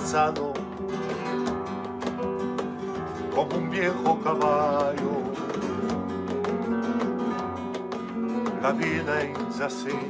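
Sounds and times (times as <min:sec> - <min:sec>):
person singing: 0:00.0 - 0:01.5, 0:03.0 - 0:06.7, 0:08.4 - 0:10.0
acoustic guitar strummed and plucked: 0:00.0 - 0:10.0.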